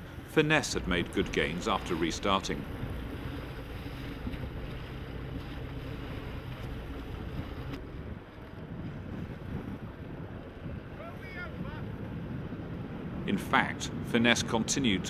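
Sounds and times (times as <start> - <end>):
water rushing along a hull: 0.0 - 15.0
wind buffeting microphone: 0.0 - 15.0.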